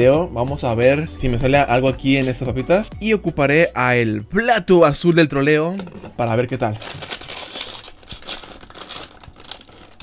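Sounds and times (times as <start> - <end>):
chip bag crinkling open: 6.2 - 10.0.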